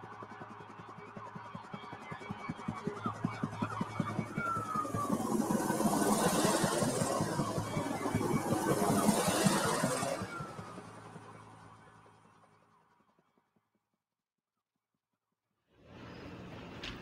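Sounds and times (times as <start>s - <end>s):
fast pulsing music: 0.0s - 12.1s
rush of noise: 4.6s - 11.5s.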